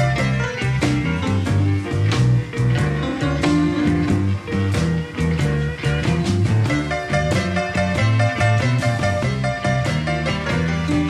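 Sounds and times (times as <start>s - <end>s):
electric blues band playing: 0.0s - 11.0s.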